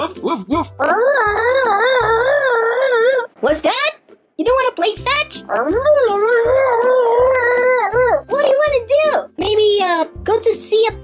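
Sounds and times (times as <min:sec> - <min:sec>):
person imitating dog whine: 0:00.0 - 0:03.3, 0:05.5 - 0:08.3.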